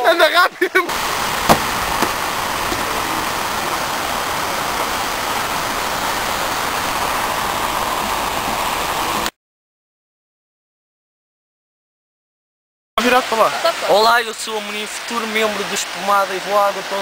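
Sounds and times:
water rushing over weir: 0.0s - 9.3s, 13.0s - 17.0s
brief knock: 1.5s - 2.8s.

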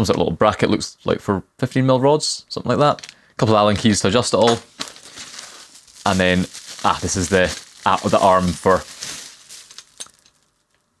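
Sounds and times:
bubble wrap rustling: 3.0s - 10.8s.

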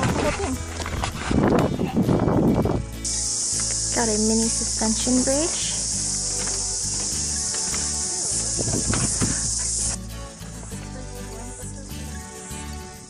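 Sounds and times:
background music: 0.0s - 13.0s
insects chorus: 3.0s - 10.0s.

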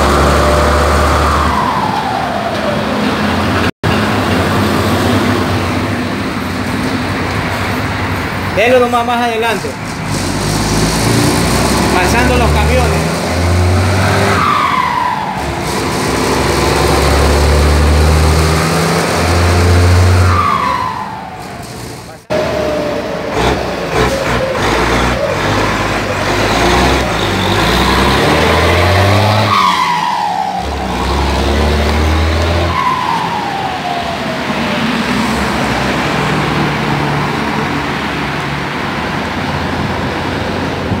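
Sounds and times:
diesel bus engine: 0.0s - 41.0s.

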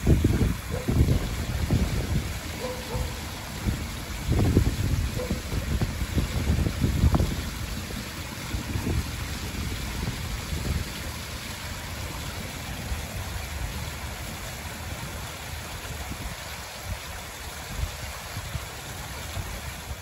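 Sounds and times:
fountain water splashing on stones: 0.0s - 20.0s
wind rumble on microphone: 0.0s - 20.0s.

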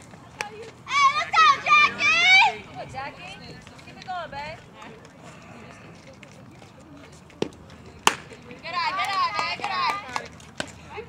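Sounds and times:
girls shouting: 0.9s - 2.7s
bat cracking a softball: 7.4s - 8.4s.

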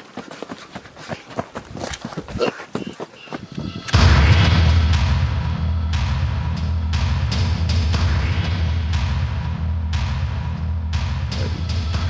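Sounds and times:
dramatic film score music: 3.4s - 12.0s
deep cinematic boom: 3.9s - 12.0s.

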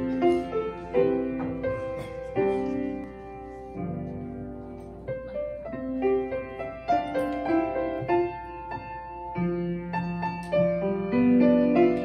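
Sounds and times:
slow keyboard music: 0.0s - 12.0s.

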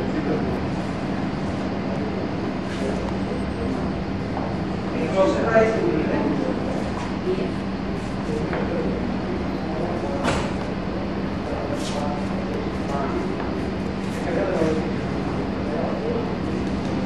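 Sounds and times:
faint voices: 0.0s - 17.0s.

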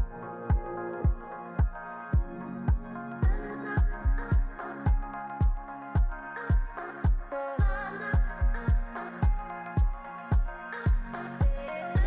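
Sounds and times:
kick drum: 0.0s - 12.0s
sustained synth chords: 0.0s - 12.0s
hi-hat ticks: 3.2s - 12.0s.

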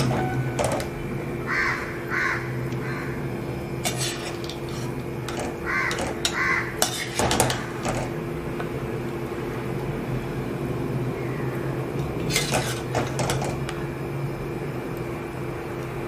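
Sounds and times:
steady low hum: 0.0s - 16.0s
crow cawing: 1.5s - 3.2s, 5.6s - 6.8s
metal utensils and dishes clinking: 3.8s - 8.1s, 12.2s - 13.6s.

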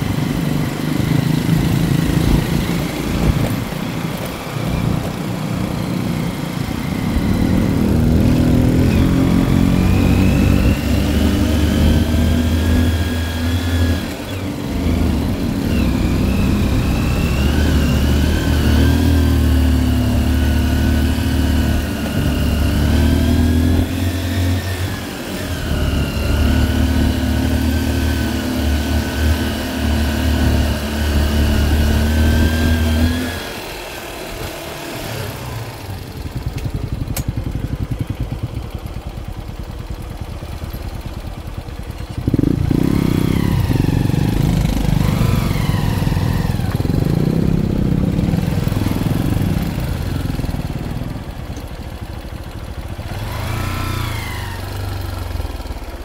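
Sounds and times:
motorcycle engine revving: 0.0s - 56.0s.

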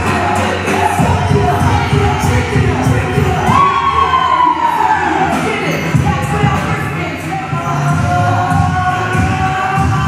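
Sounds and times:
group cheering and shouting: 0.0s - 6.8s
hip-hop beat: 0.0s - 10.0s.

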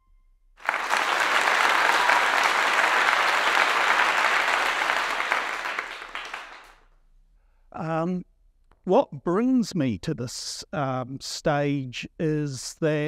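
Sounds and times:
audience applauding: 0.6s - 6.8s.

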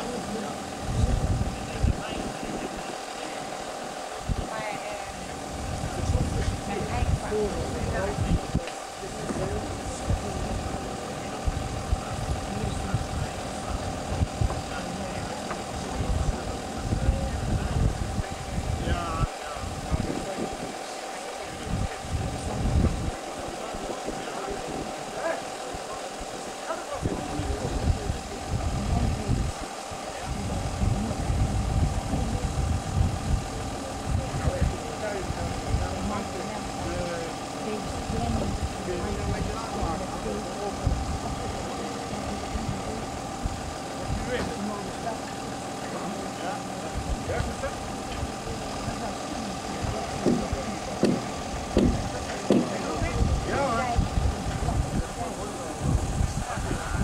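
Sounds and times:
crane engine running: 0.0s - 57.0s.

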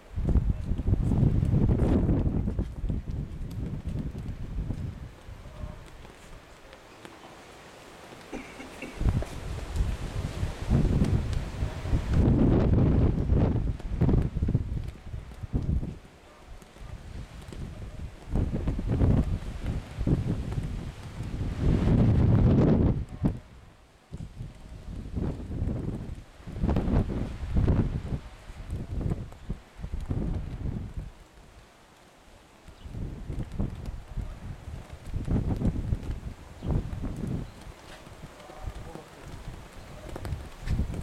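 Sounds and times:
wind buffeting microphone: 0.0s - 6.9s, 8.8s - 31.6s, 32.7s - 41.0s.

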